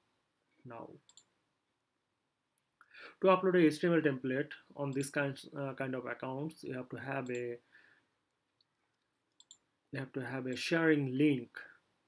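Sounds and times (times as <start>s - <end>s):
computer mouse clicks: 1.1s - 1.3s, 8.9s - 9.6s.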